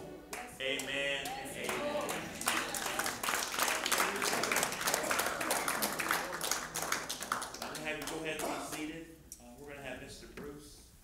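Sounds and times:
hands clapping: 0.3s - 8.8s.

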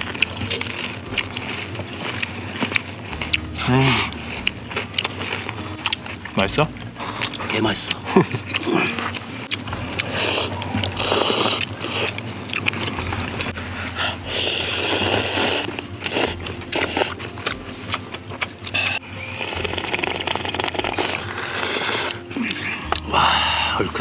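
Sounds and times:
slurping noodles and soup: 8.6s - 17.3s, 18.6s - 24.0s.

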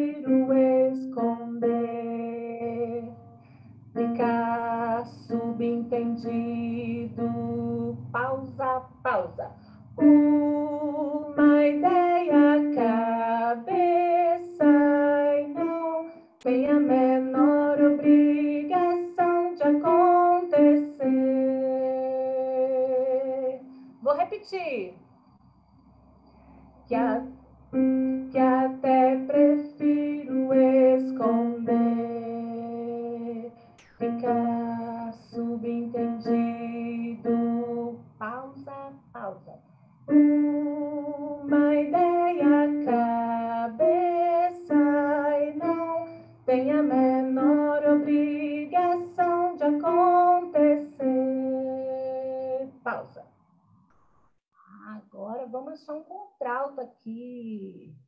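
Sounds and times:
woman singing over video call: 0.0s - 24.8s, 26.9s - 53.2s.

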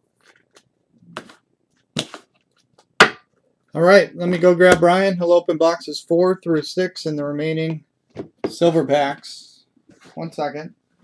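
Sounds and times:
cards knocking on a tabletop: 3.0s - 3.3s
man talking: 3.8s - 7.9s, 8.5s - 10.8s.

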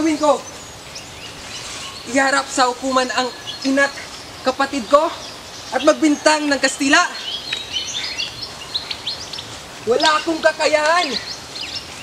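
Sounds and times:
birds chirping: 0.0s - 12.0s
outdoor background noise: 0.0s - 12.0s.

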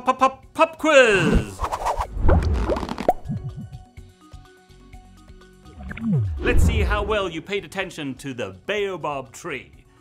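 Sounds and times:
cartoon popping sound effects: 5.8s - 6.4s.

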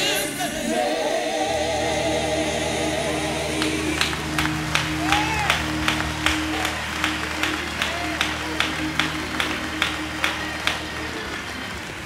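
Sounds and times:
gospel music with held chords: 0.0s - 12.0s
hands clapping in time: 3.6s - 12.0s.

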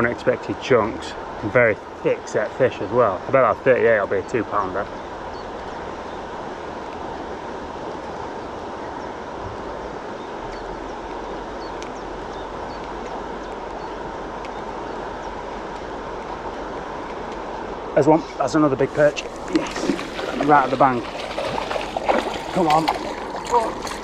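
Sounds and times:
river rushing: 0.0s - 24.0s.

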